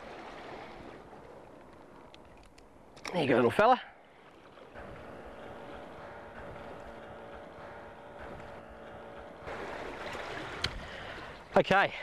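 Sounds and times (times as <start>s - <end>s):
sea water washing against rocks: 0.0s - 1.5s, 4.2s - 11.8s
faint steady hum: 0.0s - 12.0s
wind: 0.0s - 12.0s.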